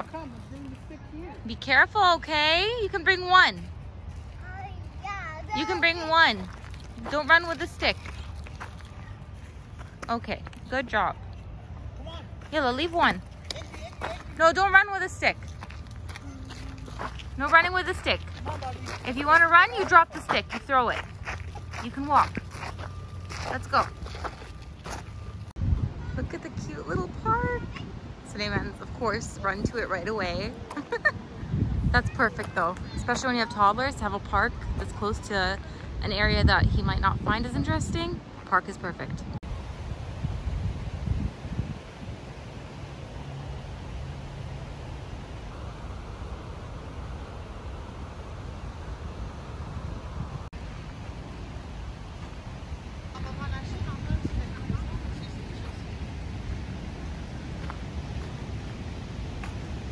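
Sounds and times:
footsteps on gravel: 0:05.7 - 0:10.7, 0:12.3 - 0:14.4, 0:15.4 - 0:25.5
wind rumble on microphone: 0:23.3 - 0:59.9.

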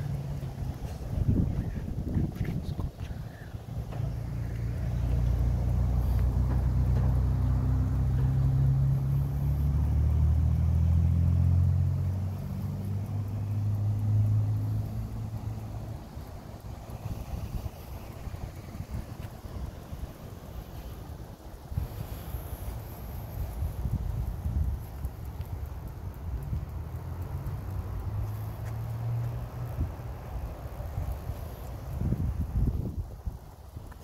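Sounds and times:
vehicle engine hum passing: 0:00.0 - 0:34.0.

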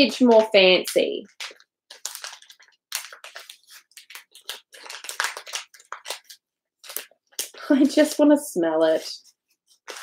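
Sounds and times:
plastic wrapping crinkling: 0:00.0 - 0:08.2, 0:08.8 - 0:10.0.

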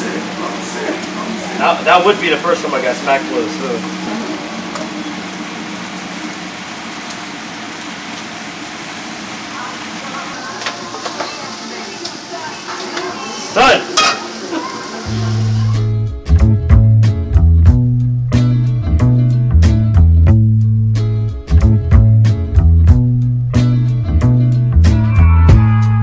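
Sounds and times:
shellfish sizzling in a frying pan: 0:00.0 - 0:15.8
metal tongs scraping a pan: 0:14.0 - 0:14.4
music with bass line: 0:15.1 - 0:26.0.

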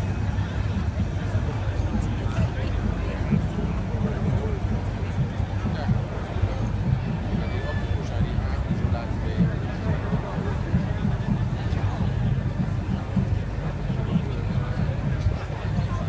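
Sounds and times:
crowd chatting: 0:00.0 - 0:16.0
steady low rumble: 0:00.0 - 0:16.0.

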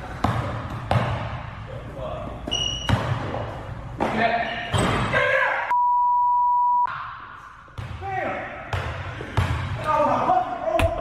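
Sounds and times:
basketball bouncing: 0:00.1 - 0:01.4, 0:08.7 - 0:09.8
censor bleep: 0:05.7 - 0:06.9.

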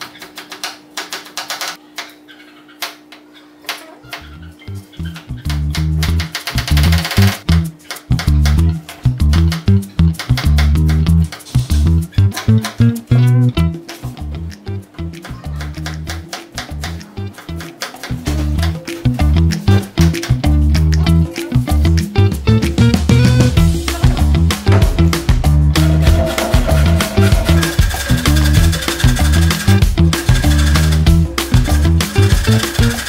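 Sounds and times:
background music with bass: 0:04.3 - 0:33.0.

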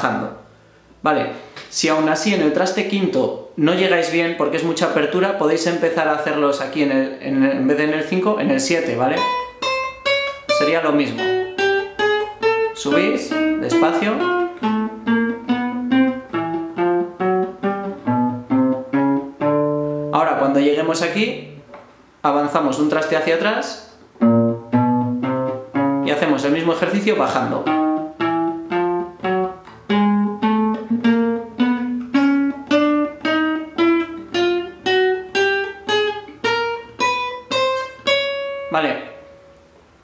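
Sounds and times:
classical guitar single notes: 0:09.1 - 0:20.6, 0:24.1 - 0:39.8.

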